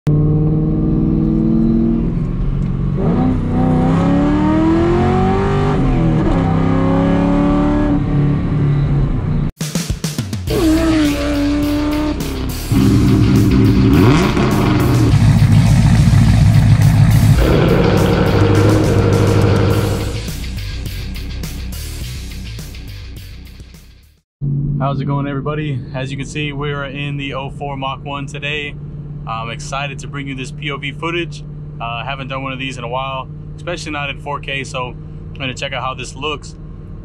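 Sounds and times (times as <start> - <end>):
car engine revving: 0.1 - 9.4, 10.5 - 20.6
music: 9.6 - 24.2.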